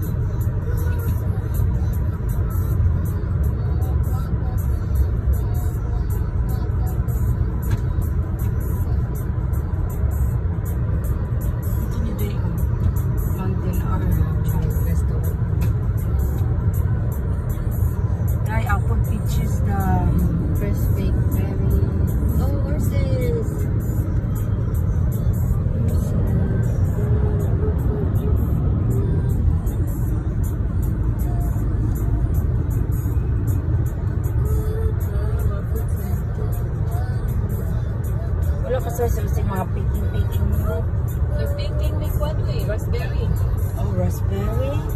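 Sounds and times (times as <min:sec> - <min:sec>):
car tyre and engine rumble: 0:00.0 - 0:44.9.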